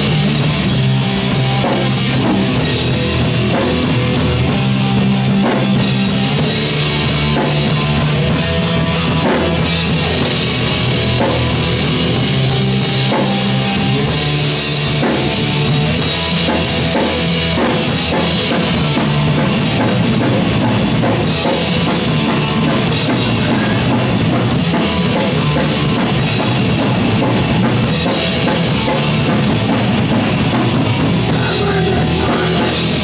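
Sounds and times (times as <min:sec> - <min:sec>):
bass guitar: 0:00.0 - 0:33.0
drum kit: 0:00.0 - 0:33.0
electric guitar: 0:00.0 - 0:33.0.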